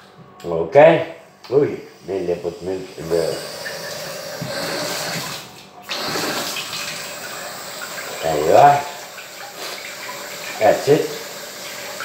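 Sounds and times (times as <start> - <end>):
tap water running: 1.9 - 12.0.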